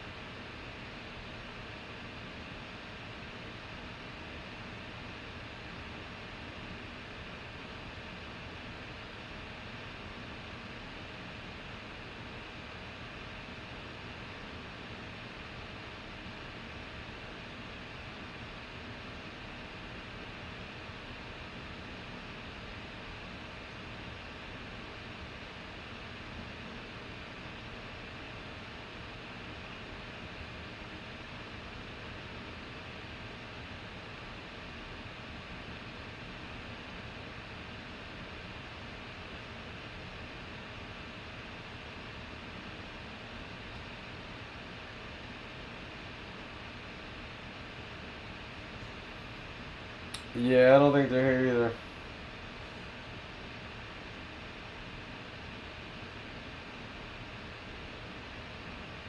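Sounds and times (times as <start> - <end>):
faint hum: 0.0 - 59.0.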